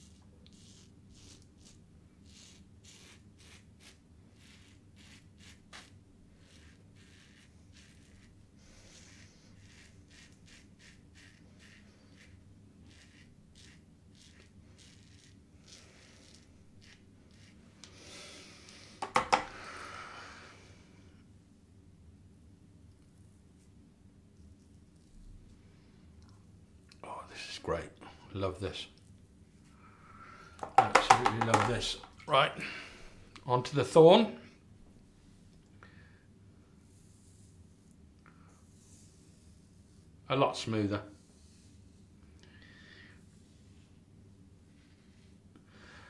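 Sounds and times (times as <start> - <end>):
razor scraping stubble: 0.0 - 17.9.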